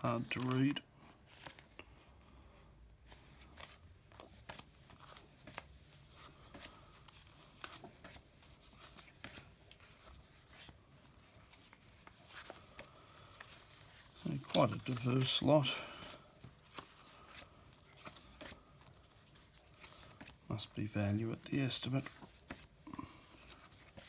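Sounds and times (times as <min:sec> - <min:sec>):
paper envelopes rustling: 0:00.0 - 0:02.2, 0:03.0 - 0:24.0.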